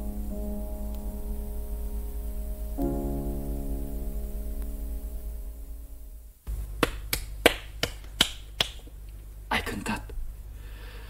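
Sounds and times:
held piano chord: 0.0 - 6.4.

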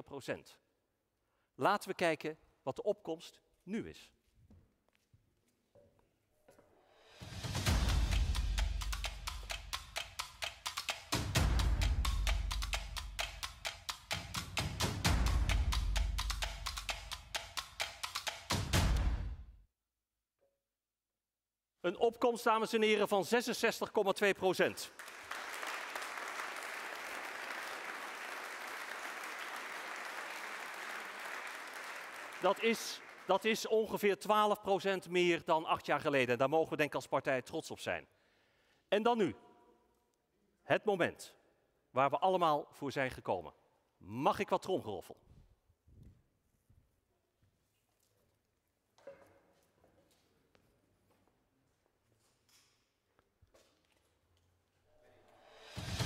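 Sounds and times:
audience applauding: 24.9 - 33.6.

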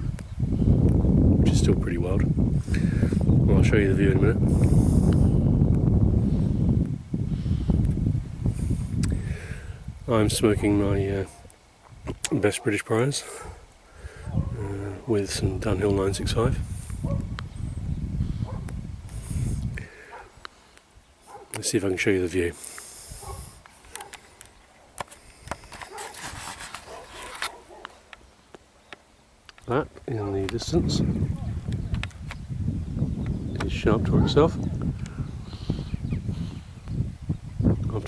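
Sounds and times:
low microphone rumble: 0.0 - 12.2, 13.4 - 20.2, 29.8 - 38.0
puffing on a tobacco pipe: 2.6 - 3.4, 4.4 - 5.5, 6.2 - 9.9, 16.6 - 17.3, 18.2 - 20.9, 22.5 - 27.6, 35.0 - 36.9.

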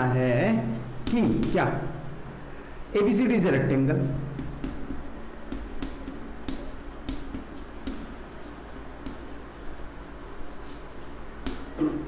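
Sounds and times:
chalk scratching on blackboard: 0.6 - 1.7, 4.0 - 11.8.

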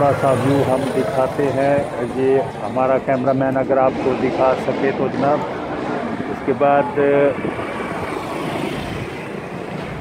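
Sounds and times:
passing vehicle engines: 0.0 - 10.0.

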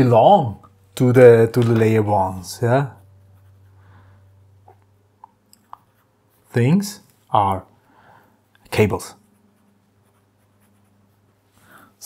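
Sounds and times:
faint low hum: 0.0 - 12.0
pen scratching on paper: 2.9 - 3.7, 9.2 - 11.3.

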